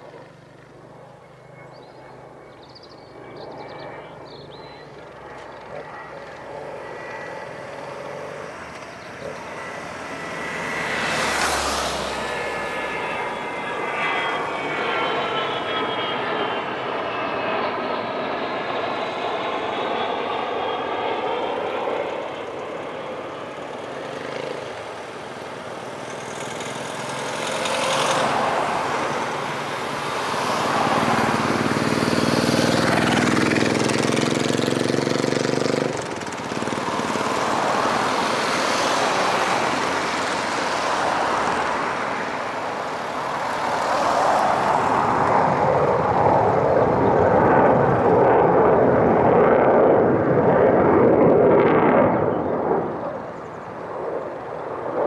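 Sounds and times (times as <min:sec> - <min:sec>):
jet aircraft flying past: 0:00.0 - 0:55.0.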